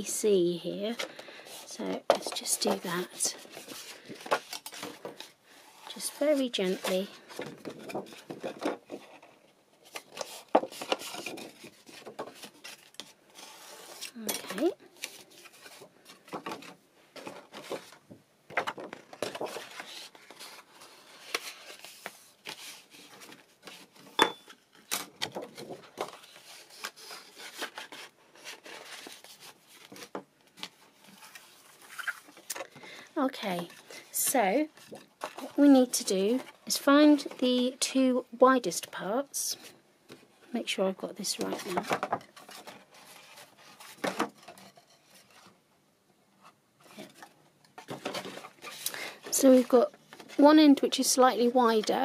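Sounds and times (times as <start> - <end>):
paper sliding and folding: 0.9 - 16.4, 19.0 - 24.1.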